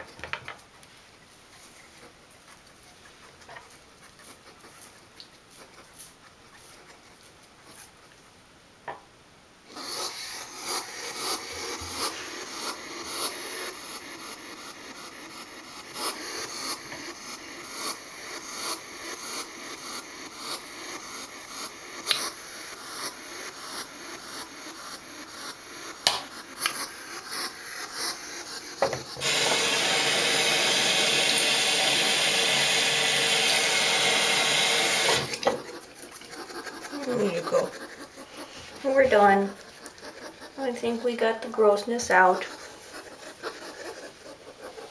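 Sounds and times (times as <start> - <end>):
sink tap running: 29.2 - 35.4
toothbrush scrubbing quills: 29.2 - 44.9.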